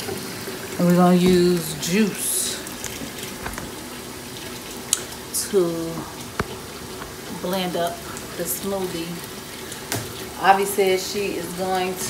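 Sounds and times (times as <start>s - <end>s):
tap running into sink: 1.1s - 1.9s, 2.6s - 4.1s.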